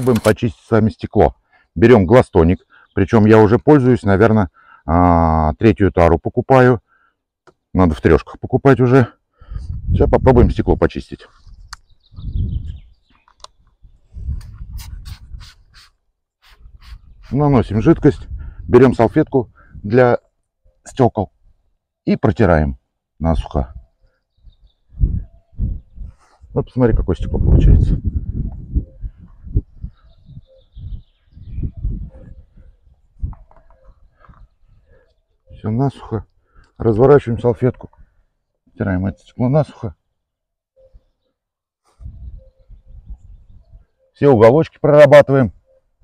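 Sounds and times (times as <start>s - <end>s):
spray bottle spritzing: 14.8s - 17.0s.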